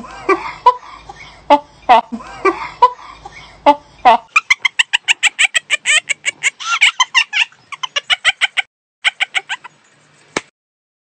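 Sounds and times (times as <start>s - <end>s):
woman laughing hard: 3.6s - 9.8s.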